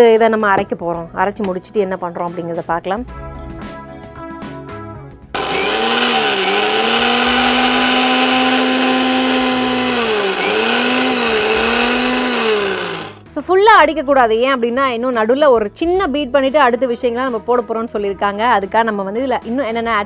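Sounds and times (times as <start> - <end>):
background music: 0.0 - 20.0
mixer grinder whining: 5.4 - 13.2.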